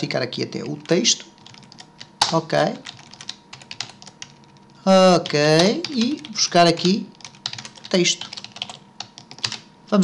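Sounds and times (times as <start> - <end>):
computer keyboard keys clicking: 0.6 - 9.7.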